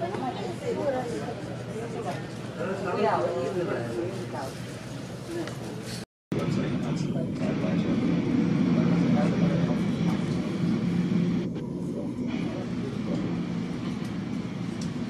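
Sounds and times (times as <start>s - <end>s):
murmur of voices: 0.0s - 15.0s
jet engines rumbling: 6.3s - 15.0s.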